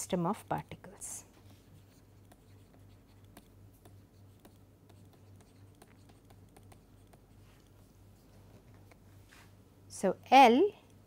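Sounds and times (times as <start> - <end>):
low electrical hum: 0.0 - 11.0
stylus tapping and scratching screen: 0.6 - 9.0.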